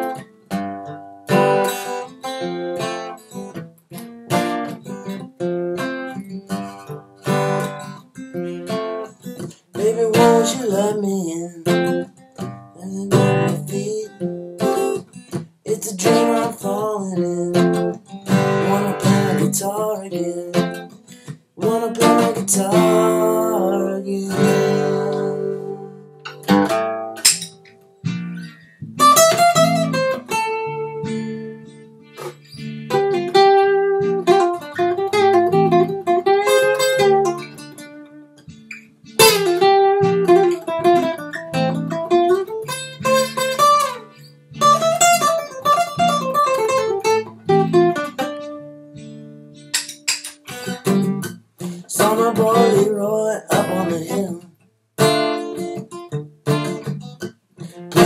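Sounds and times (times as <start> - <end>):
acoustic guitar playing: 0.0 - 58.0.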